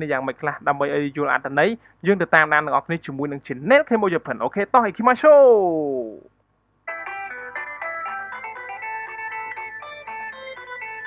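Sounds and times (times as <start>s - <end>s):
light ticking beat: 6.9s - 11.0s
quick melody of clear notes: 6.9s - 11.0s.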